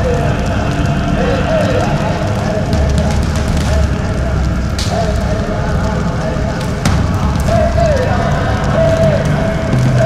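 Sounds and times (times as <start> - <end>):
loud crackling rumbling noise: 0.0 - 10.0.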